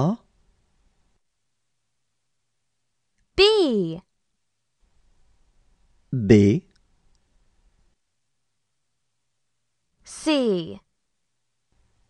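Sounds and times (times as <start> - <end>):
person saying a letter: 6.2 - 6.7.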